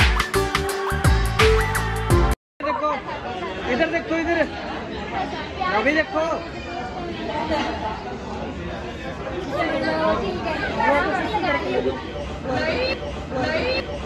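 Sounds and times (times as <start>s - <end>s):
group chatter: 2.6s - 14.0s.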